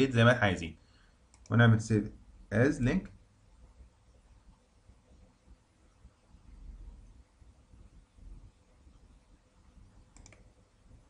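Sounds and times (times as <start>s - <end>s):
computer mouse clicks: 1.3s - 1.6s, 10.0s - 10.6s.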